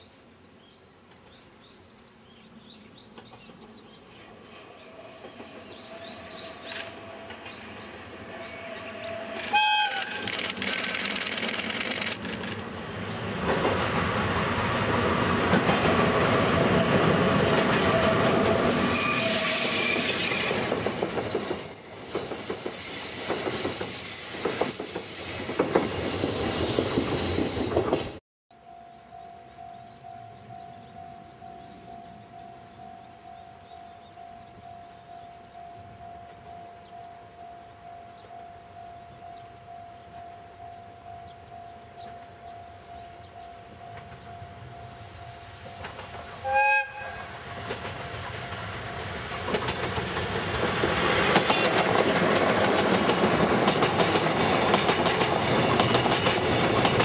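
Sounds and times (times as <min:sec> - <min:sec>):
train wheels rumbling and clattering: 0:03.0 - 0:09.6, 0:10.2 - 0:28.2, 0:45.6 - 0:46.5, 0:47.4 - 0:57.0
train horn blast: 0:08.1 - 0:10.3, 0:18.0 - 0:20.1, 0:46.4 - 0:47.6
wheel squeal: 0:18.8 - 0:28.2.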